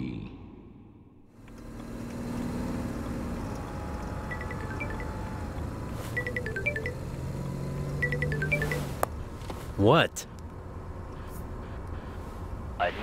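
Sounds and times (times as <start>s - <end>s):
car interior rumble: 1.3s - 12.8s
phone ringtone jingle: 4.2s - 9.0s.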